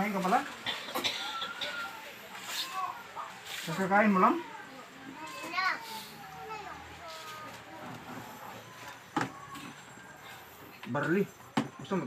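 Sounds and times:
quiet voices: 0.4 - 11.8.

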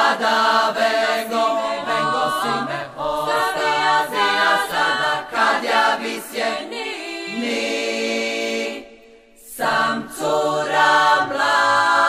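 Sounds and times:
women singing a cappella: 0.0 - 12.0.

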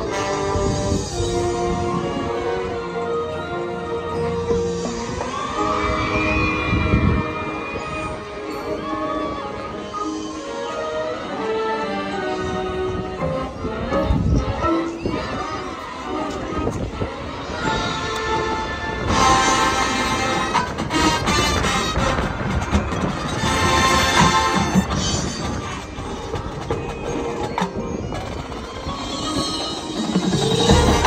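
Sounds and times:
marching band wind chords: 0.0 - 31.0
marching band playing: 16.9 - 28.9, 29.7 - 31.0.

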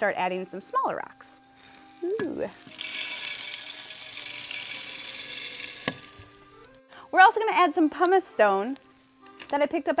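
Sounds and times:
small rocks rattling onto glass: 1.6 - 6.8.

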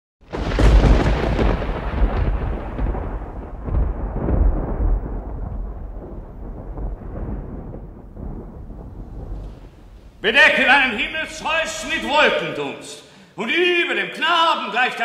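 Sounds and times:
rolling thunder: 0.2 - 12.4.

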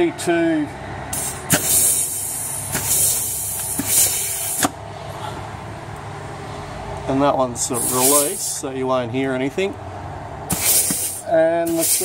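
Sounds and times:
compressed air hissing: 1.1 - 4.8, 7.7 - 8.5, 10.5 - 12.0.

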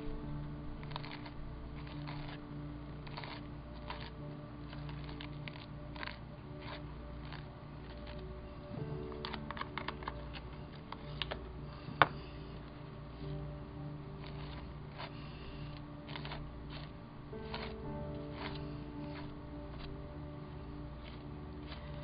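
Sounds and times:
soft background music: 0.0 - 22.0
plastic spatula scraping and tapping: 0.8 - 2.4, 3.0 - 8.2, 14.2 - 15.2, 16.1 - 19.9.

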